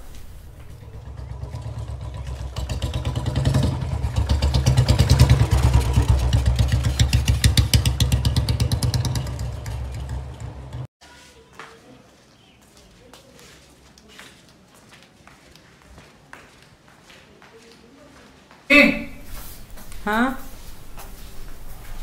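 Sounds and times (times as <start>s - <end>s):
motorcycle engine thumping: 0.0s - 10.8s.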